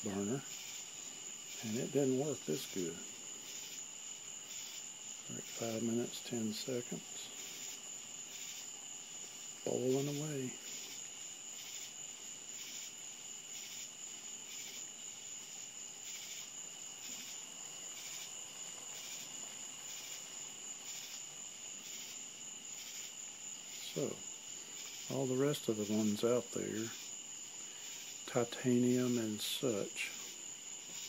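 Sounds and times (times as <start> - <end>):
crickets chirping: 0.0 - 31.0
pot of boiling water hissing: 0.0 - 31.0.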